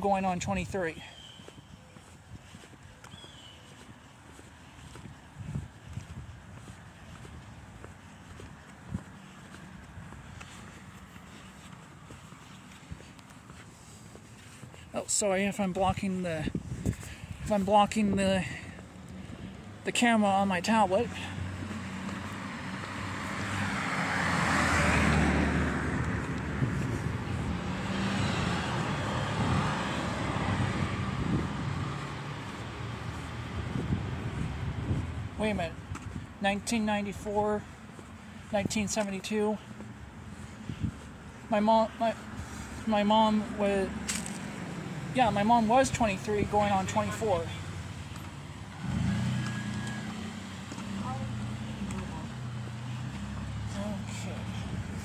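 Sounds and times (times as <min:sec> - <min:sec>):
road traffic noise: 0:00.0 - 0:55.0
car driving past: 0:21.2 - 0:34.3, 0:47.5 - 0:55.0.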